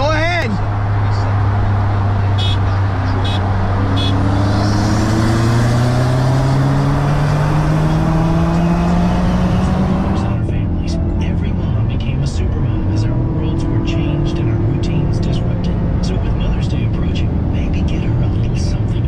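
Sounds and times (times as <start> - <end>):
car engine accelerating: 0.0 - 19.0.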